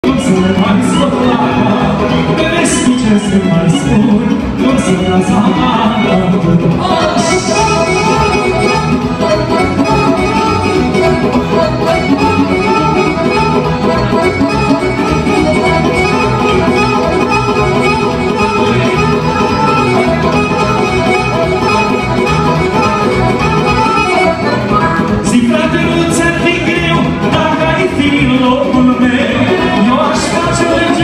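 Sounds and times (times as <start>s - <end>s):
accordion: 0.0s - 31.0s
live band dance music: 0.0s - 31.0s.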